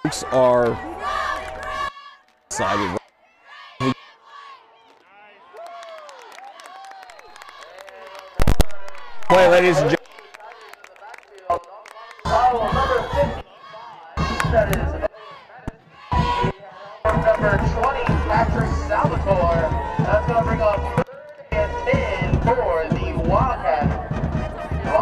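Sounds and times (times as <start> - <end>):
indistinct voices: 7.4 - 25.0
music: 17.1 - 25.0.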